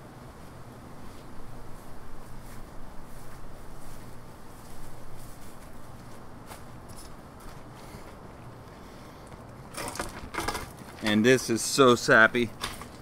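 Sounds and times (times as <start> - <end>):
faint outdoor background: 0.0 - 13.0.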